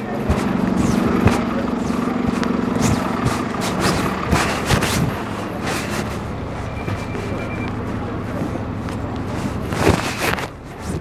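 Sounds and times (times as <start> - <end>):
bus diesel engine running: 0.0 - 11.0.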